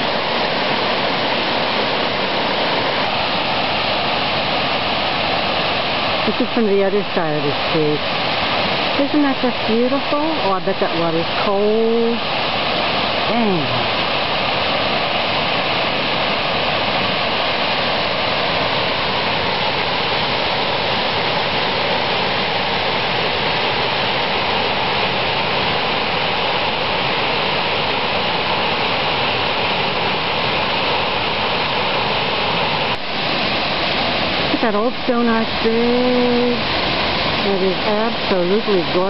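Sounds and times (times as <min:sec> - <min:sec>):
water rushing over boulders: 0:00.0 - 0:39.0.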